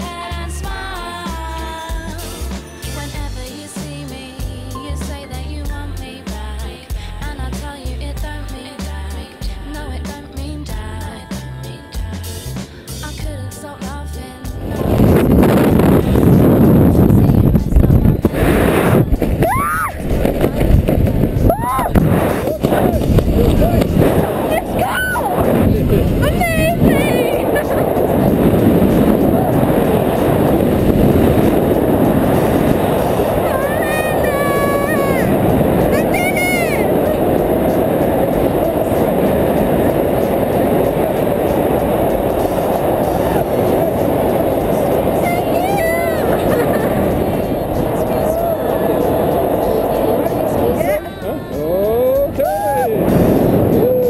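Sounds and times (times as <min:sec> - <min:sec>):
wind buffeting microphone: 0:14.4 - 0:54.0.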